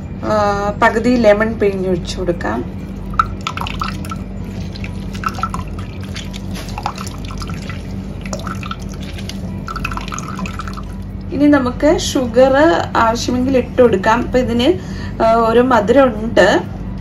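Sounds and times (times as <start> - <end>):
liquid pouring and splashing: 2.7 - 11.3.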